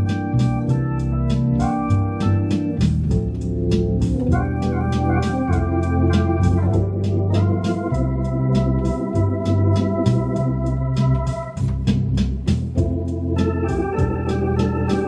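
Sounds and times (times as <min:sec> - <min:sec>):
light ticking beat: 0:00.0 - 0:15.0
organ pedal bass notes: 0:00.0 - 0:15.0
organ playing sustained chords: 0:00.0 - 0:15.0.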